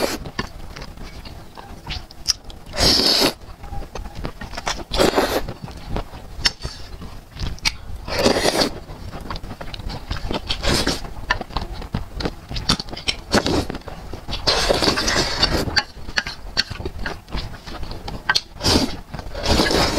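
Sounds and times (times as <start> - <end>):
chewing with mouth smacks: 0.0 - 19.9
person slurping noodles: 2.7 - 3.4, 4.8 - 5.5, 8.1 - 8.8, 10.5 - 11.0, 14.4 - 15.8, 18.6 - 19.9.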